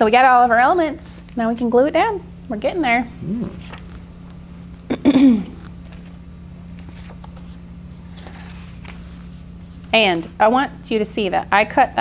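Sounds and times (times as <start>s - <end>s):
steady low hum: 0.0s - 12.0s
woman speaking: 9.9s - 12.0s.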